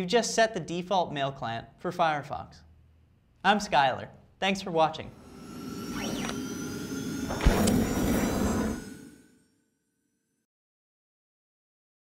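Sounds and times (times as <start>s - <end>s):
pitch sweep: 5.0s - 9.3s
whooshing rush: 5.1s - 9.3s.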